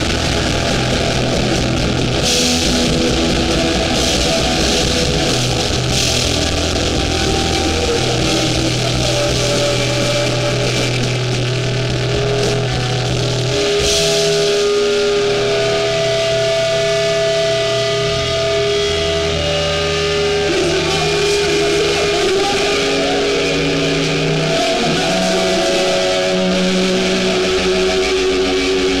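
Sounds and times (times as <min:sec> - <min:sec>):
distorted guitars and bass chords: 0:00.0 - 0:29.0.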